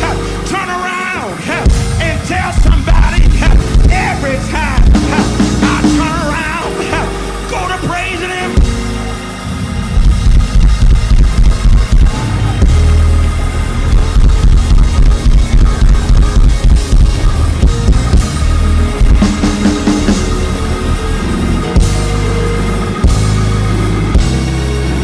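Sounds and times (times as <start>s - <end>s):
person singing: 0.0s - 8.8s
band playing gospel music: 0.0s - 25.0s.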